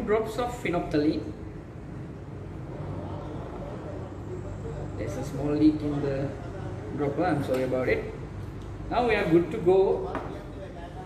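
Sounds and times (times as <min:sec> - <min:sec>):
low room hum: 0:00.0 - 0:11.0
faint voice murmuring: 0:02.6 - 0:05.0.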